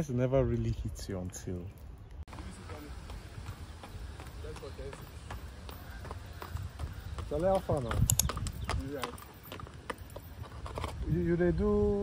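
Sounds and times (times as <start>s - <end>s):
horse hooves clopping: 1.8s - 11.4s.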